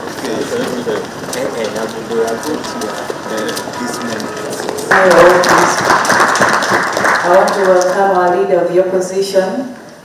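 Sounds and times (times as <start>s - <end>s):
audience clapping: 0.0s - 8.4s.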